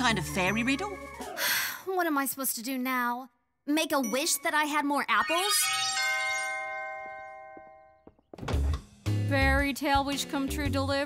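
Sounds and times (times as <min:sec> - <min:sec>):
doorbell chime: 0:05.5 - 0:08.2.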